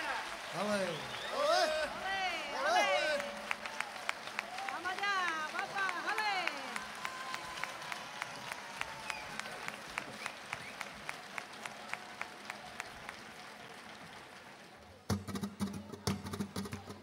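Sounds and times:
audience applause: 0.0s - 15.1s
sharp hand-clapping: 2.8s - 17.0s
flamenco guitar: 15.1s - 17.0s.

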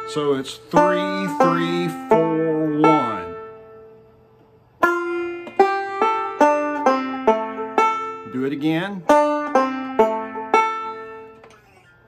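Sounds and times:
banjo picked slowly: 0.0s - 4.2s, 4.8s - 12.0s.

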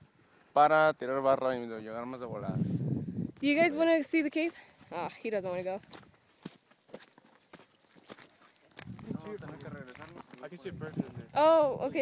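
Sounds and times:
footsteps on stony path: 4.4s - 12.0s.

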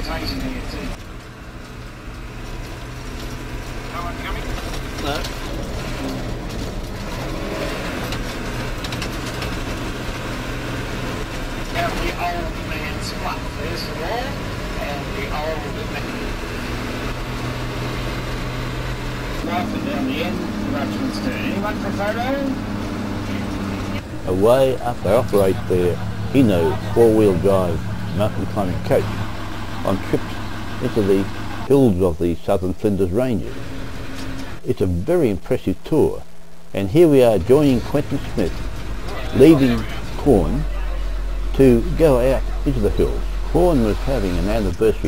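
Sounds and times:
coach engine humming: 0.0s - 45.0s
higher hum: 12.3s - 32.0s, 35.9s - 45.0s.

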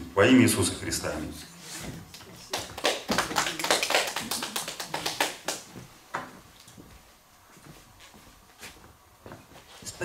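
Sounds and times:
people clapping: 2.1s - 5.8s.

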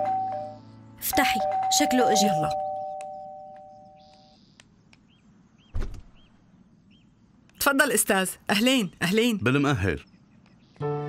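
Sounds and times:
two-note doorbell chime: 0.0s - 0.6s, 1.2s - 4.0s
door thump opening: 5.7s - 6.2s.

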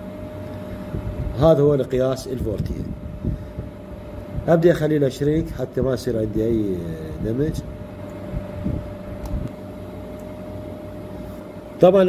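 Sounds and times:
low background rumble: 0.0s - 11.9s
man talking: 1.4s - 3.0s, 4.4s - 7.7s, 11.8s - 12.0s.

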